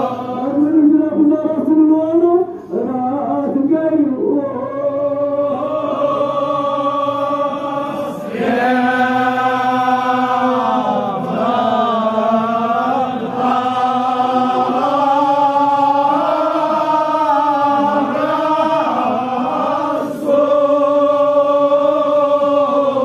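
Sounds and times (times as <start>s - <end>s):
man chanting through a microphone: 0.0s - 23.0s.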